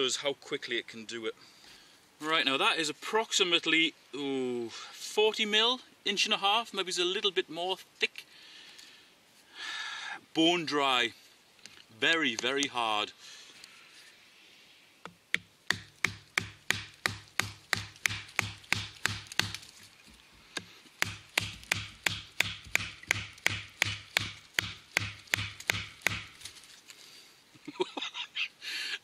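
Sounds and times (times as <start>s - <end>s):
stick batoning knife through wood: 15.1s - 26.6s.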